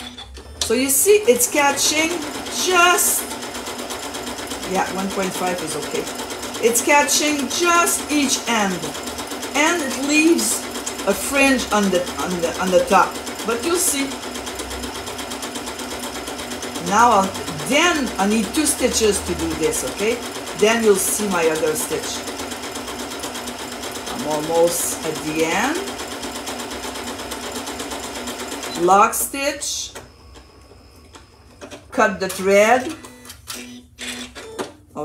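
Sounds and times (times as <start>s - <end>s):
sewing machine running: 0.0s - 34.8s.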